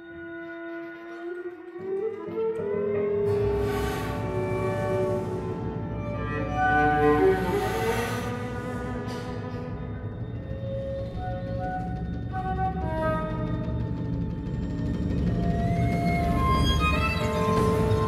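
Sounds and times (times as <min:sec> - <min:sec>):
chamber ensemble playing: 0:04.2 - 0:11.6.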